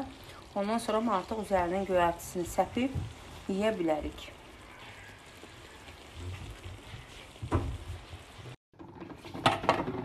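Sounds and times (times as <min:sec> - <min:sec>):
liquid bubbling in a pan: 0:00.0 - 0:10.0.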